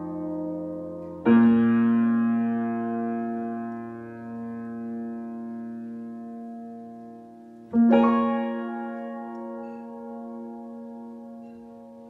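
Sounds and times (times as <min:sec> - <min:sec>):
piano chord ringing: 0:00.0 - 0:12.0
soft piano notes: 0:00.0 - 0:12.0.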